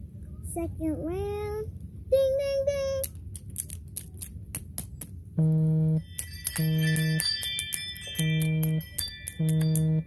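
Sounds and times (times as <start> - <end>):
low electronic tone: 5.4 - 6.0, 8.2 - 10.0
high bell-like ringing tones: 5.4 - 10.0.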